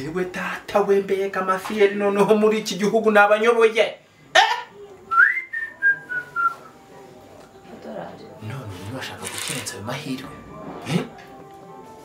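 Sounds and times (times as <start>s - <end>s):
person whistling: 5.1s - 6.6s.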